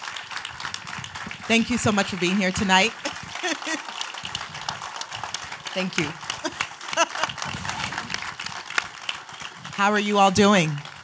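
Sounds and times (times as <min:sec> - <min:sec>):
applause: 0:00.0 - 0:11.0.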